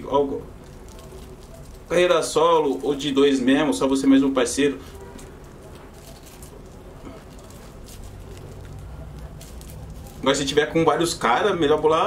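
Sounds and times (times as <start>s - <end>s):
low background hum: 0.0s - 12.0s
rolling paper rustling: 0.4s - 12.0s.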